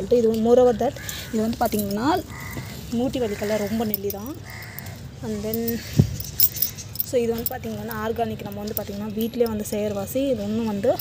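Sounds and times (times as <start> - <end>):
woman's voice: 0.0 - 4.5, 5.2 - 6.0, 7.0 - 11.0
light clinks: 0.3 - 2.2, 3.6 - 10.2.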